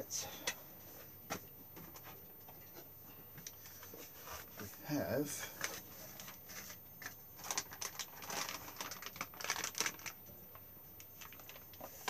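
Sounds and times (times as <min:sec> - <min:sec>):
paper rustling and clicking: 0:05.6 - 0:10.2, 0:11.0 - 0:12.0.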